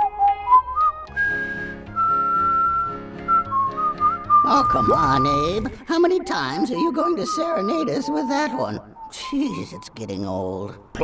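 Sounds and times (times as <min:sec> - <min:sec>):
person whistling a tune: 0:00.0 - 0:05.6
light backing music: 0:00.0 - 0:07.9.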